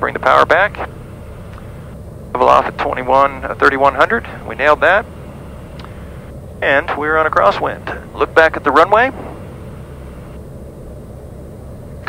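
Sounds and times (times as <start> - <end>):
turboprop engine cabin drone: 0.0 - 12.0.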